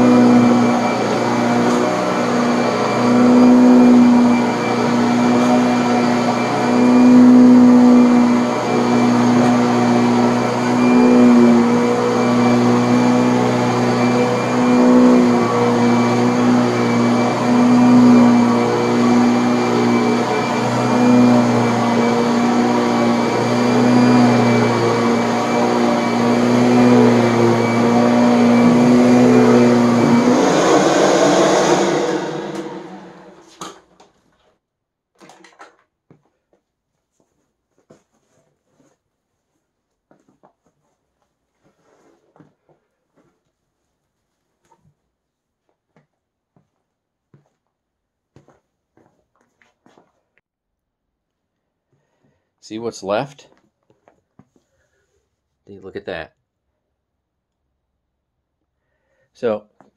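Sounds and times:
vacuum cleaner on carpet: 0.0s - 33.8s.

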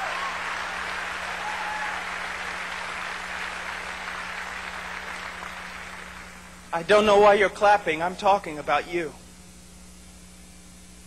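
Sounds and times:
audience applauding: 0.0s - 6.7s.

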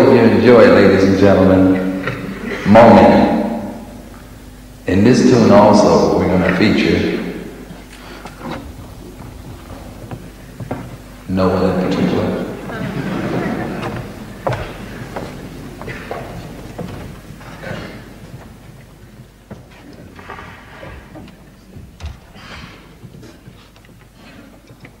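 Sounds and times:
low steady hum: 0.0s - 25.0s
murmured voices: 11.3s - 18.5s.

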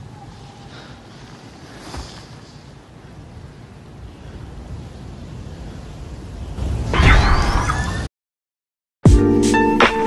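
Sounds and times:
wind hissing: 0.0s - 8.1s.

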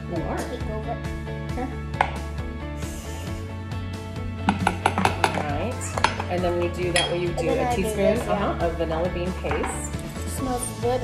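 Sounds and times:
background music: 0.0s - 11.0s
utensils clinking against ceramic bowl: 4.5s - 8.4s.

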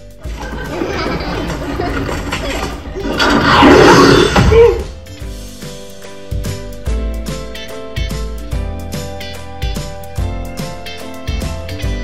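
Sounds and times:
film music: 0.0s - 6.7s
loud crashes: 0.3s - 5.0s.

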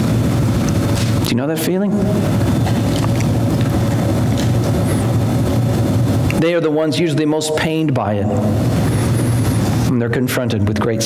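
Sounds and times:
faint even hum: 0.0s - 11.0s
low rumble of room noise: 0.0s - 11.0s.

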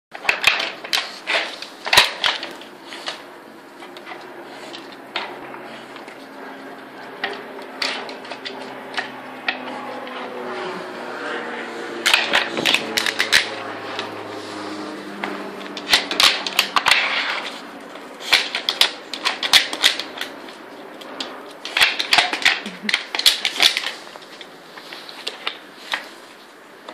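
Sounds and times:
wooden blocks clacking: 15.8s - 17.5s, 18.2s - 20.3s, 21.1s - 24.4s.

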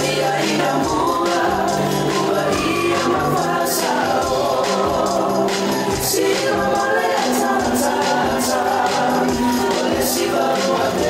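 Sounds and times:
dance music with steady beat: 0.0s - 11.0s
voices singing together: 0.0s - 11.0s.

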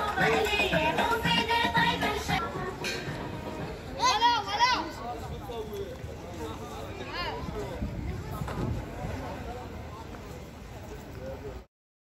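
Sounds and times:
faint outdoor background: 0.0s - 11.7s.

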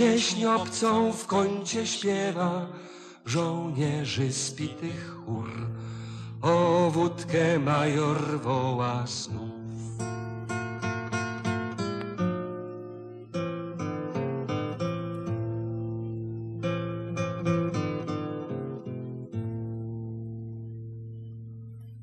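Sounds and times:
acoustic guitar playing: 0.0s - 22.0s.

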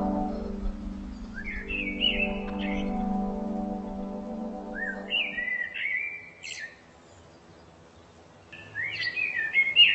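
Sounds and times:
songbird singing: 0.0s - 9.9s.

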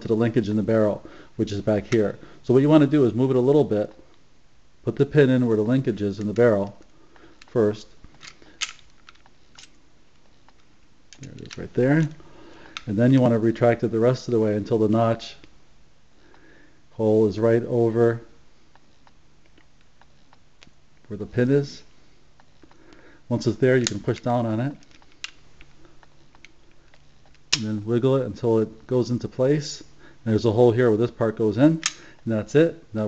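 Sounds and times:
faint metallic clicks of pistol parts: 6.2s - 13.3s, 23.8s - 27.7s, 31.8s - 32.2s
pistol pin clicking: 8.2s - 9.8s.

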